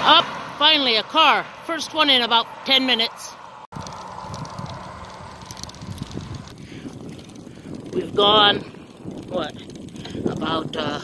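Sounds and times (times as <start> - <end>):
bicycle rumbling over asphalt: 3.7 - 11.0
wind buffeting microphone: 3.7 - 11.0.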